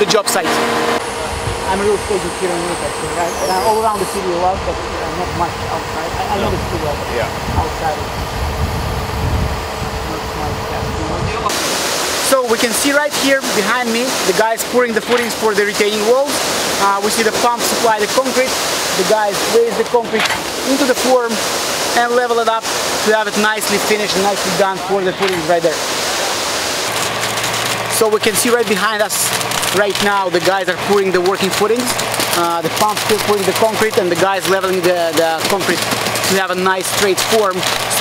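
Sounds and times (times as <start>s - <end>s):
concrete pump running: 0.0s - 38.0s
diesel engine rumbling: 0.0s - 38.0s
low steady hum: 0.0s - 38.0s
steady hiss: 0.1s - 8.0s, 11.4s - 38.0s.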